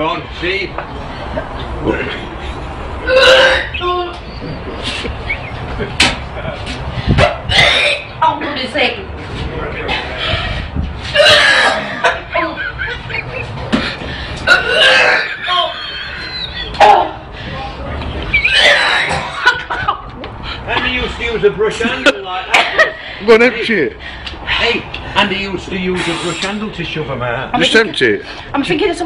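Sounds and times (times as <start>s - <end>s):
woman retching: 3.0s - 3.8s, 7.5s - 8.1s, 11.0s - 12.3s, 14.4s - 15.6s, 18.4s - 19.5s.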